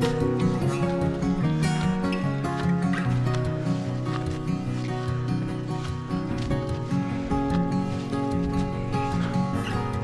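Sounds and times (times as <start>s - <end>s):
music with chords and beat: 0.0s - 10.0s.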